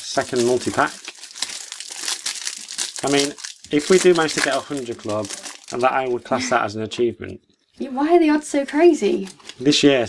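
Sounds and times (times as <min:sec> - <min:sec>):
foil wrapper tearing and crinkling: 0:00.0 - 0:06.1.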